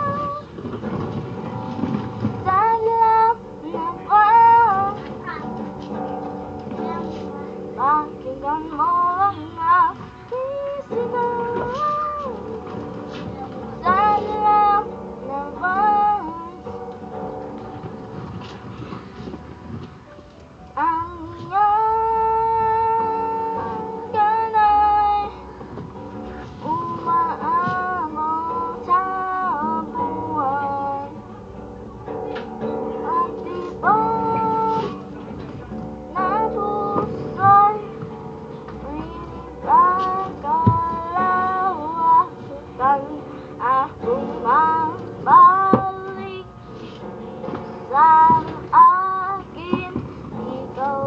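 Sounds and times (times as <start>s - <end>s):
boy singing a ballad: 0.0s - 0.9s, 2.3s - 17.3s, 20.7s - 31.4s, 32.1s - 51.0s
strummed acoustic guitar: 0.0s - 51.0s.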